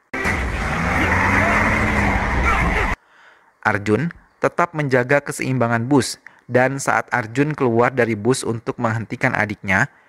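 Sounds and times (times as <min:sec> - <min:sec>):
road noise: 0:00.1 - 0:03.0.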